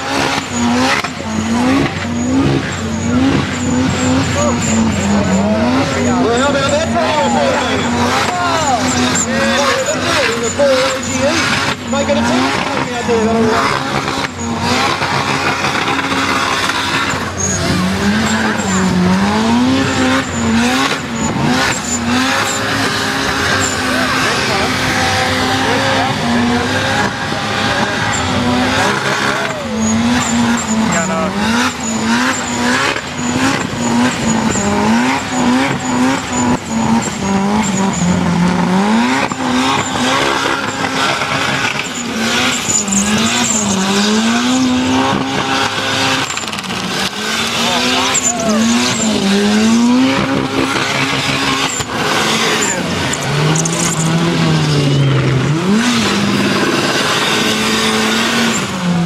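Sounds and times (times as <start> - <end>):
tyres squealing: 0.0 - 58.7
car engine revving: 0.0 - 59.0.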